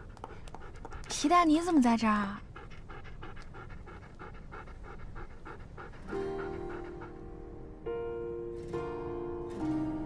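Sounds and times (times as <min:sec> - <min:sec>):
dog panting rapidly: 0:00.0 - 0:07.4.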